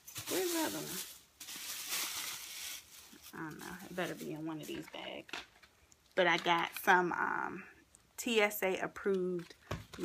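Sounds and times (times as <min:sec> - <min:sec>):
plastic bags rustling: 0:00.0 - 0:07.0.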